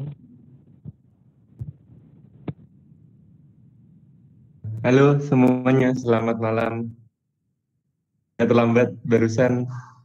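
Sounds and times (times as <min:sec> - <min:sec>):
faint microphone hum: 0:00.0 - 0:07.1.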